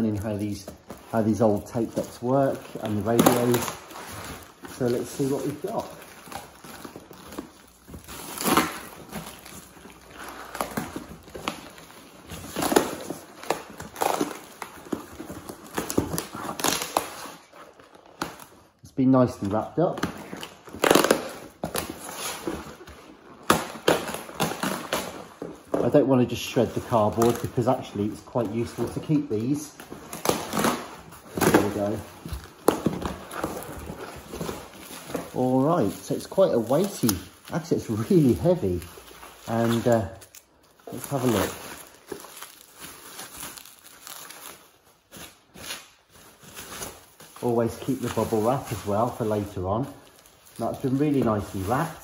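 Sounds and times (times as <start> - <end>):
cardboard rustling and scraping: 0.0 - 18.6, 19.5 - 40.2, 40.9 - 52.0.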